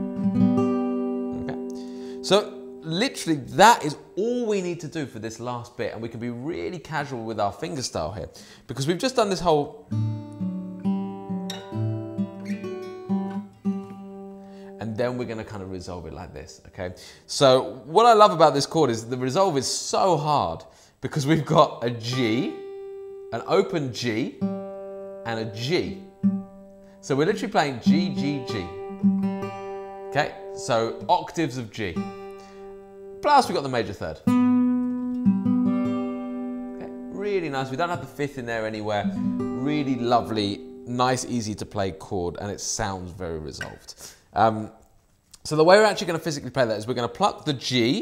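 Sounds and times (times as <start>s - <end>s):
fingerstyle acoustic guitar: 0.0s - 2.8s, 9.9s - 14.8s, 24.3s - 31.1s, 34.2s - 37.2s, 39.0s - 40.9s.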